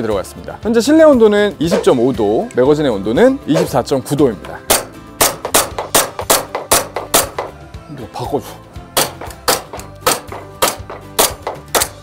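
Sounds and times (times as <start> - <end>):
airsoft pistol firing: 4.7 - 7.5, 9.0 - 12.0.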